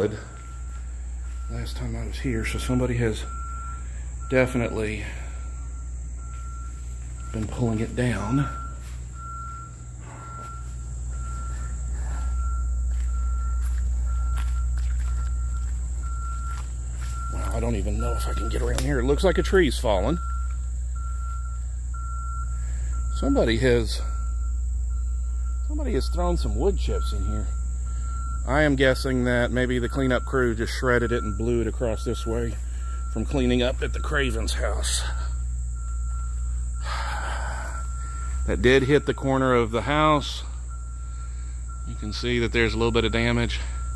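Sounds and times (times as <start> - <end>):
low rumble on microphone: 0.0 - 39.1
crickets and insects droning: 0.0 - 43.9
distant reversing alarm beeping: 0.0 - 43.9
low rumble: 5.1 - 23.4.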